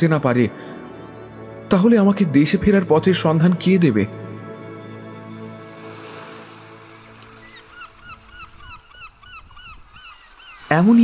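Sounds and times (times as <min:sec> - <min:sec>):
rapid bird calls: 0:07.2 - 0:11.0.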